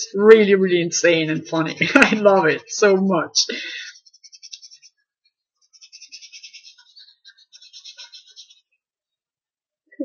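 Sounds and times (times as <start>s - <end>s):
pen scratching on paper: 3.8s - 5.0s, 5.6s - 8.7s.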